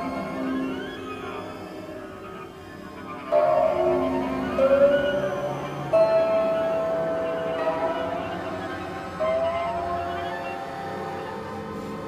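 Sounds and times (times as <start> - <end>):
steady high electronic tone: 0.0 - 12.0.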